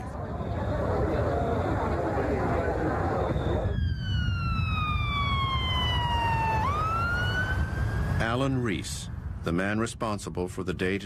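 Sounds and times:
emergency vehicle siren wailing: 0:00.0 - 0:09.4
steady low rumble: 0:07.6 - 0:11.0.

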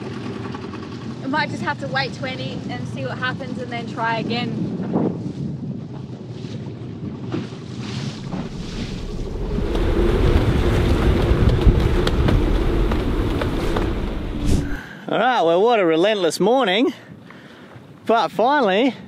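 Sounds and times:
wind buffeting microphone: 0:01.4 - 0:14.9
water washing around boat: 0:05.8 - 0:14.8.

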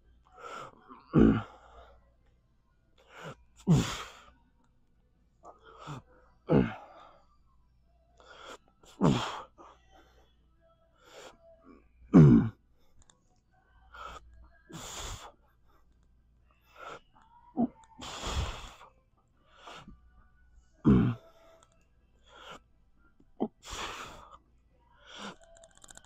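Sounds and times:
man breathing hard: 0:13.9 - 0:15.4, 0:18.0 - 0:18.9, 0:23.4 - 0:24.4.

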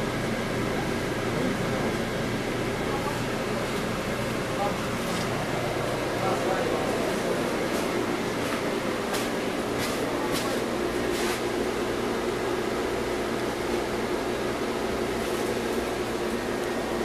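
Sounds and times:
bus engine and drivetrain hum: 0:00.0 - 0:17.0.

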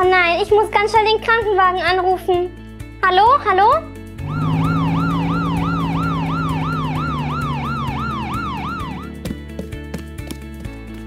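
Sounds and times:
low steady drone: 0:04.2 - 0:09.2
ambulance siren wailing: 0:04.2 - 0:09.4.

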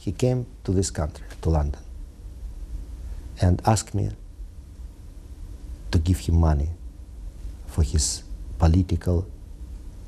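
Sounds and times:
man speaking: 0:00.0 - 0:01.9, 0:03.4 - 0:04.2, 0:05.9 - 0:06.8, 0:07.7 - 0:09.3
low steady hum: 0:00.0 - 0:10.0.

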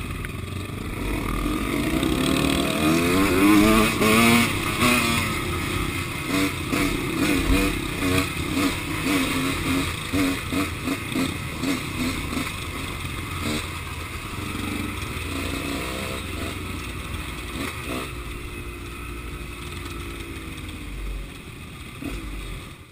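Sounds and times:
dirt bike engine running: 0:00.0 - 0:22.9.

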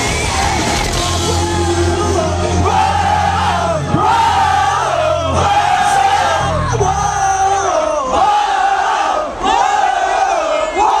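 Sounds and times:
low amplified music rumble: 0:00.0 - 0:10.0
crowd shouting and cheering: 0:00.0 - 0:11.0.

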